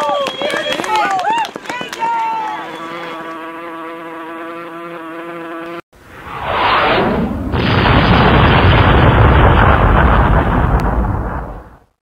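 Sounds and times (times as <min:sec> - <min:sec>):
explosion sound effect: 0:06.0 - 0:12.0.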